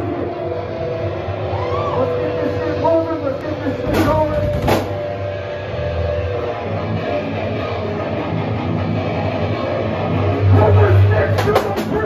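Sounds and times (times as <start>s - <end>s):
live band playing loud: 3.8s - 12.0s.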